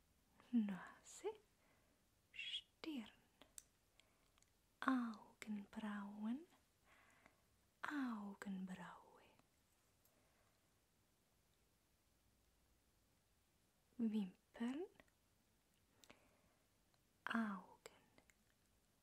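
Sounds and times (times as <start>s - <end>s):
woman speaking softly: 0.4s - 1.5s, 2.3s - 3.6s, 4.8s - 6.6s, 7.8s - 9.5s, 14.0s - 15.1s, 17.2s - 18.3s.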